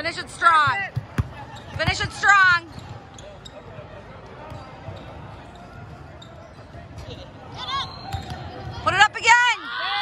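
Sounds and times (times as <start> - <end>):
reverberant hall crowd noise: 0.0 - 10.0
ball bouncing on wooden court: 0.6 - 3.0, 8.1 - 8.8.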